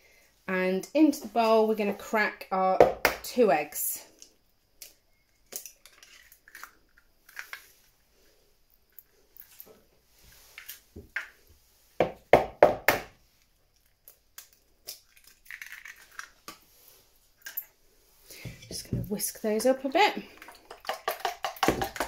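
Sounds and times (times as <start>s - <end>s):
eggshells cracking: 4.8s - 8.0s, 13.7s - 16.7s, 20.2s - 22.0s
egg tapping against bowl: 20.6s - 22.0s.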